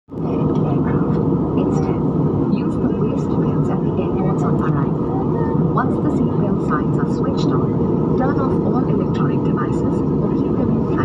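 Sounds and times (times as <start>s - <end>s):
jet cabin engine rush: 0.1s - 11.0s.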